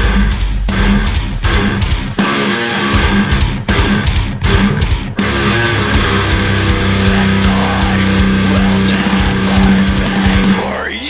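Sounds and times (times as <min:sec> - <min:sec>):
dense low pulse: 0:00.0 - 0:02.1, 0:03.0 - 0:10.6
distorted electric guitar: 0:00.0 - 0:11.0.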